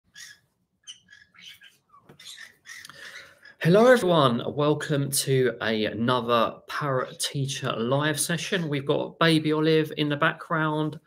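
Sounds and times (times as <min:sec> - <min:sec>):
parrot chirping: 0:00.1 - 0:03.6.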